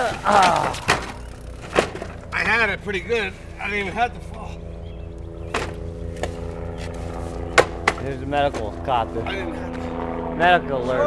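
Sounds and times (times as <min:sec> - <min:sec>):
plastic trike knocking on asphalt: 0:00.0 - 0:02.6, 0:07.6 - 0:08.7
steady low hum: 0:00.0 - 0:11.0.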